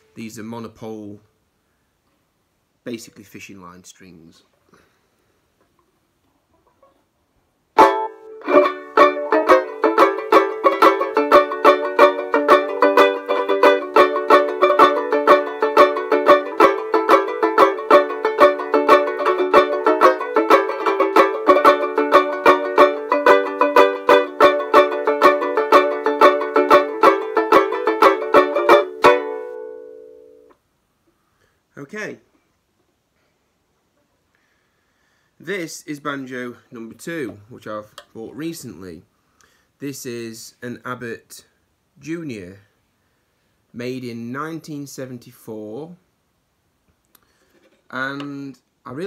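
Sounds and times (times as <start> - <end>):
banjo ukulele strumming: 7.8 - 30.6.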